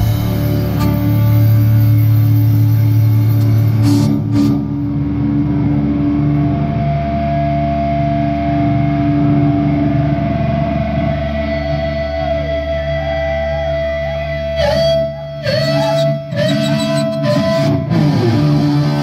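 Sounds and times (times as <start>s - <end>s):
guitar feedback tone: 0.0s - 19.0s
heavy metal band playing live: 0.0s - 19.0s.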